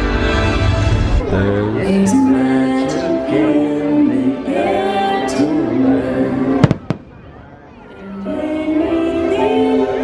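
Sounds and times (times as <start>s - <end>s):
firework bangs: 6.6s - 7.4s.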